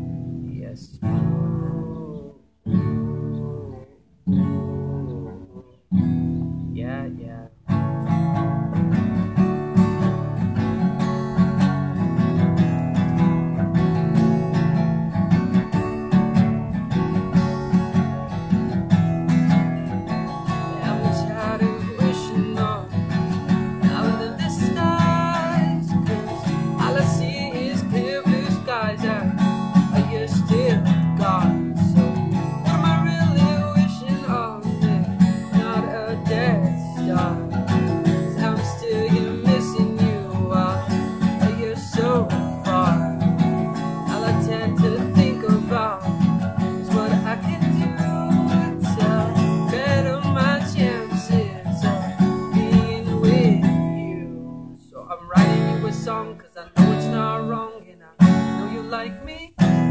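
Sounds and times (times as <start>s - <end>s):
man singing: 0.0s - 6.0s, 6.7s - 59.9s
acoustic guitar playing: 0.0s - 59.9s.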